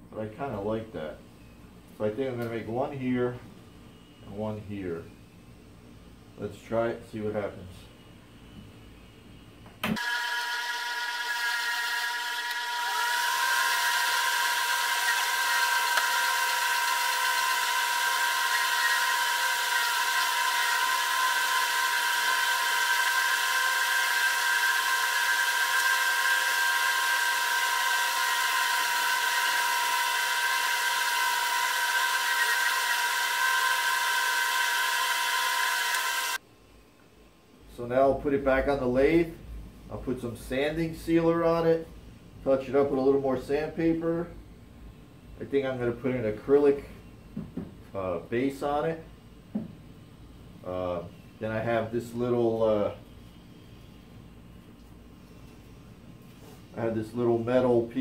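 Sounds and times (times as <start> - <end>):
spindle sander humming and whining: 10.0 - 36.4.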